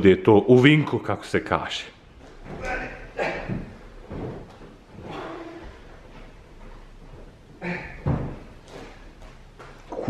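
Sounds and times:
handling knocks and bumps: 2.2 - 7.4, 8.0 - 9.9.

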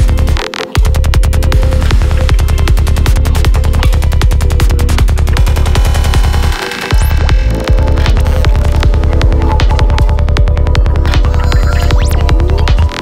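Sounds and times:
kick drum: 0.0 - 13.0
layered synth lines: 0.0 - 13.0
rolling bassline: 0.0 - 13.0.

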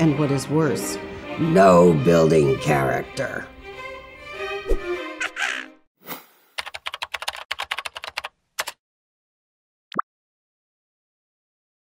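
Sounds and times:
cartoon parrot squawk: 5.2 - 5.8
keyboard typing clicks: 6.6 - 8.8.

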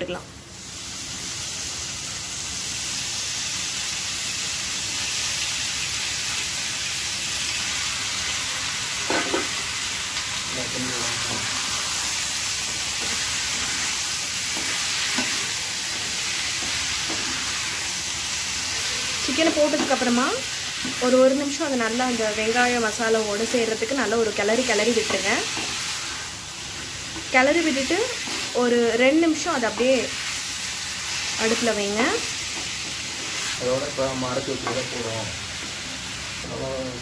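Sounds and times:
chicken sizzling in oil: 0.4 - 37.0.

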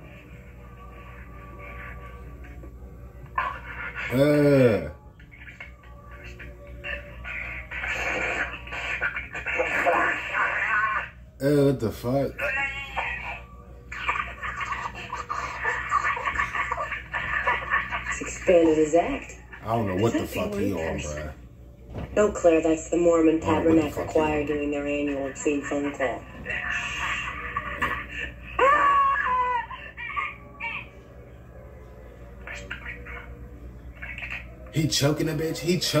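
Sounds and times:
person whimpering over telephone: 3.9 - 5.0
squealing clucking noises over phone: 5.3 - 11.2.

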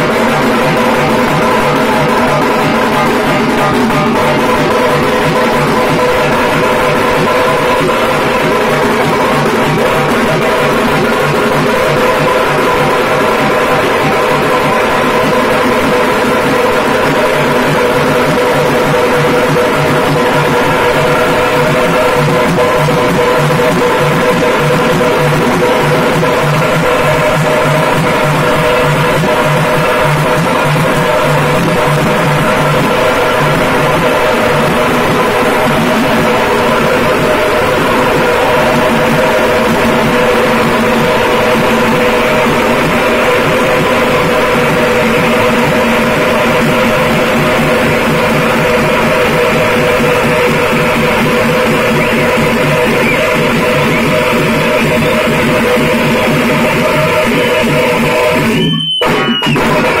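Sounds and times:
frame drums played with sticks: 0.0 - 60.0.

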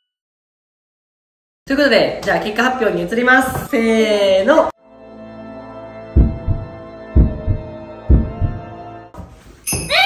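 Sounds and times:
low heartbeat-like thumps: 6.1 - 8.8.

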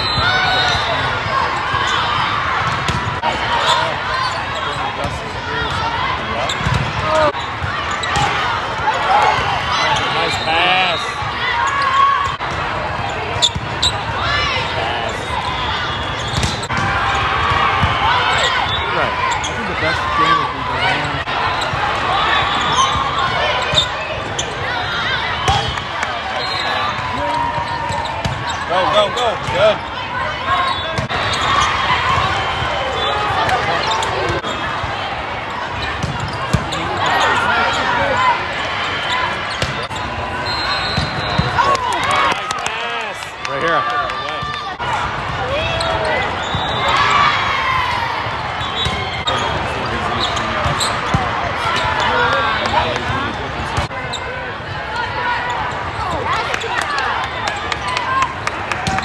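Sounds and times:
crowd voices chattering: 0.0 - 59.0
volleyball slaps: 16.3 - 18.0, 58.4 - 59.0.

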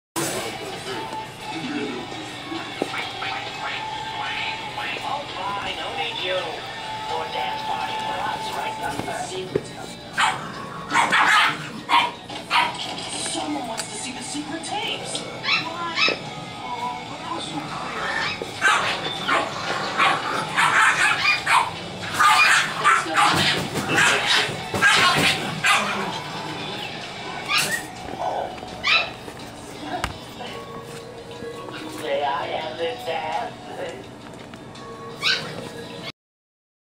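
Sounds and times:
background music: 0.2 - 36.1
puppies yapping: 10.1 - 13.0, 15.4 - 16.4, 17.8 - 29.6, 35.1 - 35.8.

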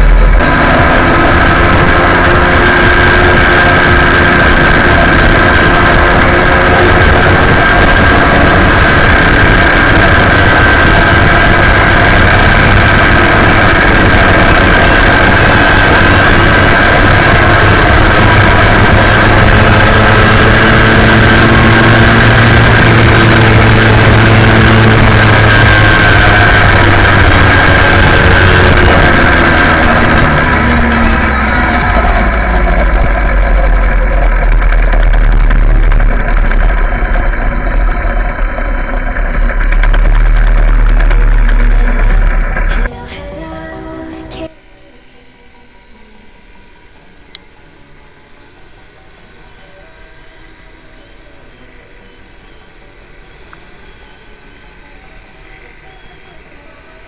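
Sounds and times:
road and wind noise: 0.0 - 42.9
moped engine running: 0.0 - 44.5.

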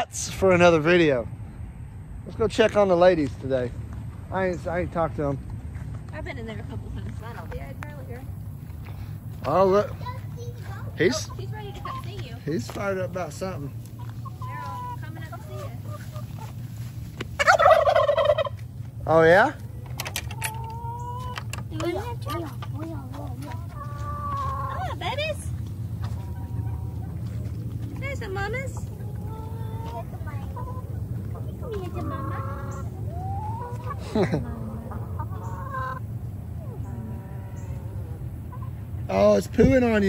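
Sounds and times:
chickens clucking: 6.4 - 40.0
turkey gobbling: 13.8 - 16.8, 17.4 - 18.7, 20.2 - 25.4, 26.0 - 39.0
chicken squawk: 17.4 - 18.6, 20.3 - 21.5, 23.6 - 25.1, 29.0 - 38.8.

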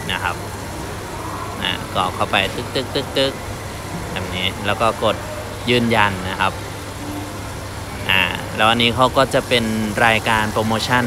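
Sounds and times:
man speaking: 0.0 - 0.4, 1.6 - 3.4, 4.1 - 6.6, 8.0 - 11.0
steady low hum: 0.0 - 11.0.

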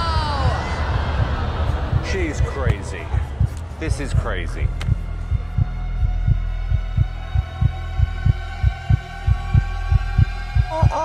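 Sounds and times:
heartbeat thuds: 0.0 - 11.0
low drone with held tones: 0.0 - 11.0.

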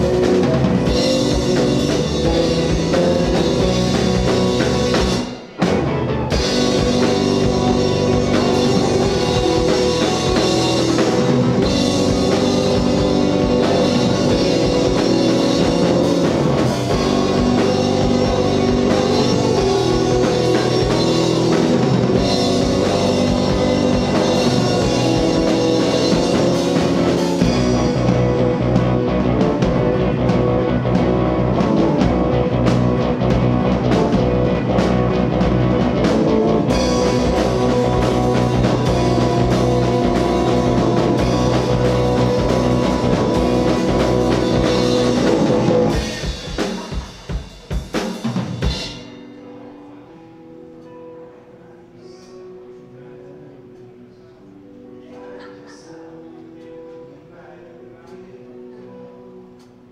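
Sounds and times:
live electronic band playing: 0.0 - 51.2.

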